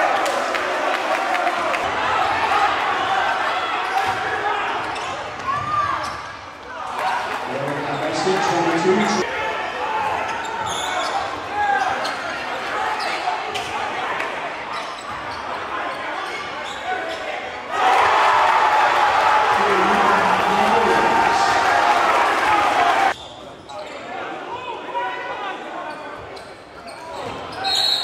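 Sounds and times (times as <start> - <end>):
people shouting and talking: 0.0 - 28.0
sneaker squeaks: 4.8 - 6.4, 10.3 - 13.7, 14.7 - 17.3, 23.1 - 24.0, 25.8 - 28.0.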